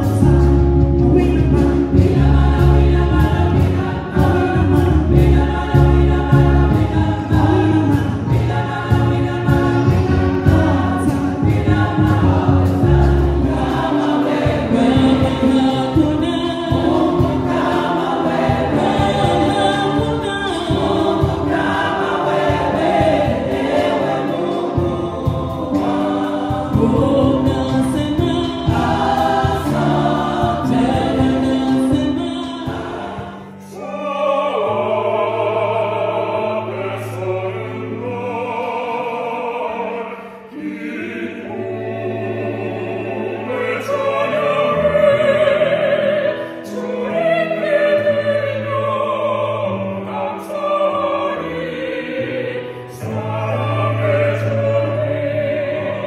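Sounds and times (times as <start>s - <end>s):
women's gospel choir singing: 0.0s - 56.0s.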